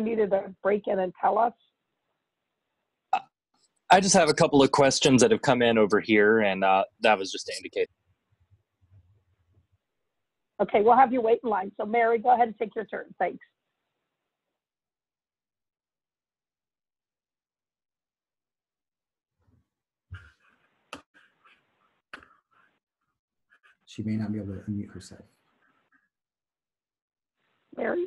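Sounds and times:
man speaking: 0:03.9 - 0:07.9, 0:23.9 - 0:25.2.

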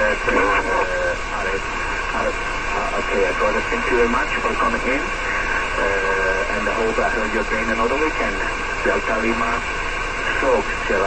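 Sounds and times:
steady hiss: 0:00.0 - 0:11.0
voice through radio speaker: 0:00.0 - 0:11.0.

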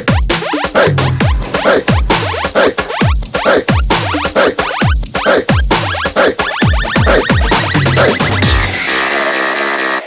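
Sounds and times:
electronic music with heavy beat: 0:00.0 - 0:10.0.

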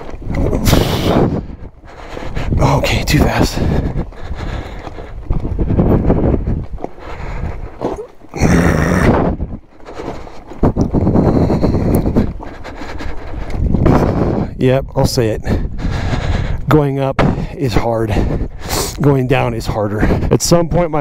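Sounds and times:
tires crunching over stones: 0:00.0 - 0:15.2.

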